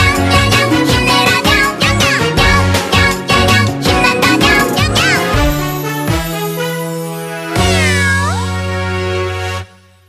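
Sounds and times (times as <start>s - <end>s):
children's song chord: 3.7s - 6.2s.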